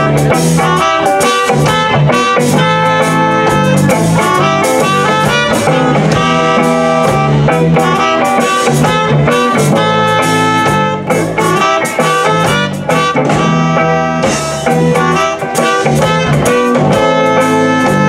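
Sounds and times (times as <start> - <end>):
reggae band playing: 0.0 - 18.0
saxophone lines: 0.0 - 18.0.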